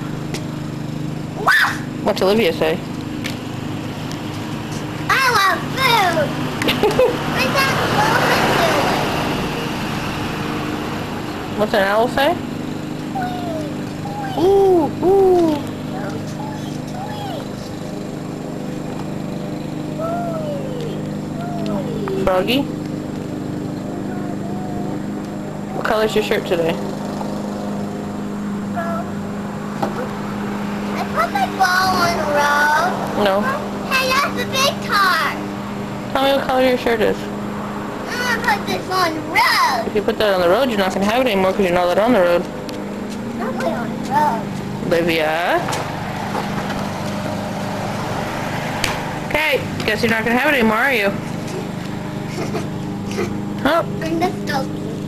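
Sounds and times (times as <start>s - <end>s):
engine drone: 0.0s - 55.0s
low machine hum: 0.0s - 55.0s
faint voice: 13.2s - 17.5s, 20.0s - 22.6s, 23.9s - 25.0s.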